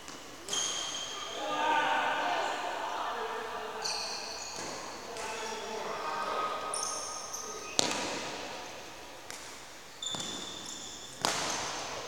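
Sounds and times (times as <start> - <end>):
shoes squeaking on court floor: 0.0 - 1.4, 3.8 - 6.0, 6.7 - 8.2, 9.9 - 12.0
racket hitting shuttlecock: 11.2 - 11.8.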